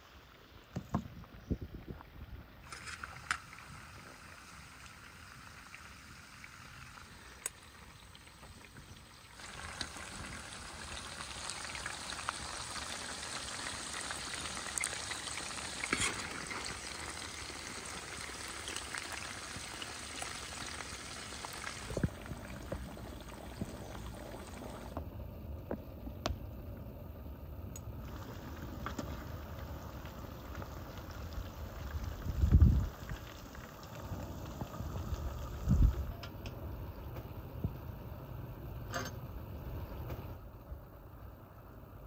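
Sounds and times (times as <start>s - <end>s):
hot fat sizzling in a wok: 9.2s - 22.0s.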